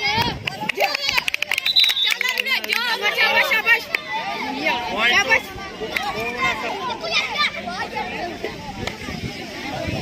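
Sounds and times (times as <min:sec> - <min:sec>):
boys shouting and calling: 0:00.0 - 0:10.0.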